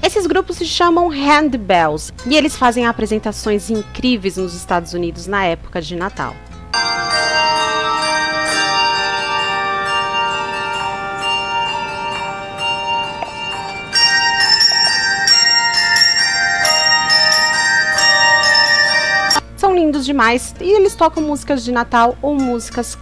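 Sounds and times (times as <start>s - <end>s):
handbell choir ringing: 6.8s - 19.4s.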